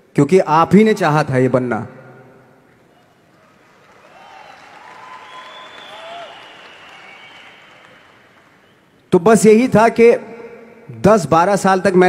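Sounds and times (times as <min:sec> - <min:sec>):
audience applause: 0:02.8 - 0:09.0.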